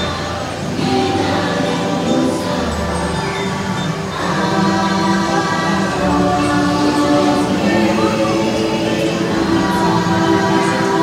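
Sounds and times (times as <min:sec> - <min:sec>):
choral singing: 0:00.0 - 0:11.0
sustained soundtrack music: 0:00.0 - 0:11.0.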